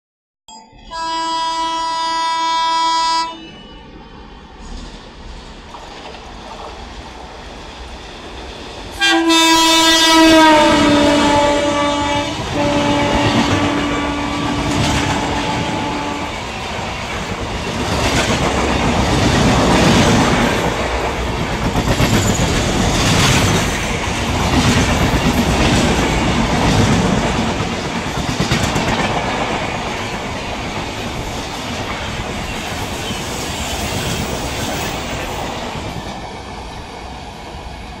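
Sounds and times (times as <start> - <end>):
locomotive horn blast: 0.8 - 3.4, 9.0 - 16.4
train wheels clattering over rail joints: 16.8 - 36.2.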